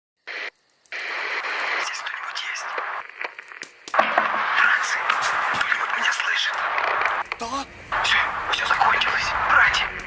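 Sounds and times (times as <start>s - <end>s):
radio static hiss: 0.2s - 10.0s.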